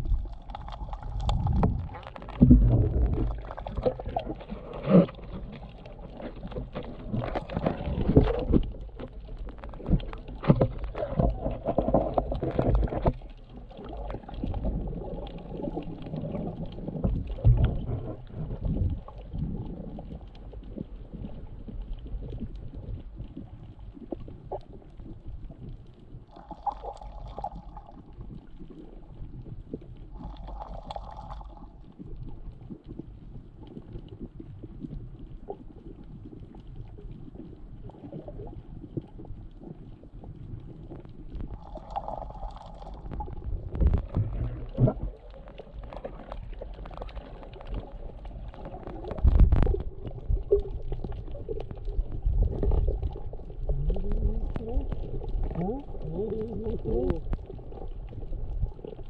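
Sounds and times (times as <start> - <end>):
water thumping camera: 0.0 - 13.2, 43.0 - 57.8
underwater rumbling water: 0.0 - 59.0.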